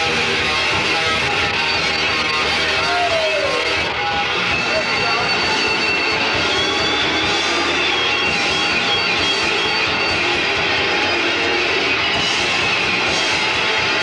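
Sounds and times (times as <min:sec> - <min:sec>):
metal band playing live: 0:00.0 - 0:14.0.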